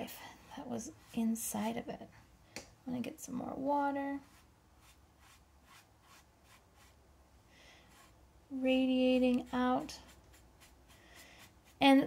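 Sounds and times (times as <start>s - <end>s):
brush swishing on wet paper: 4.2s - 7.0s, 7.9s - 8.2s, 9.2s - 12.0s.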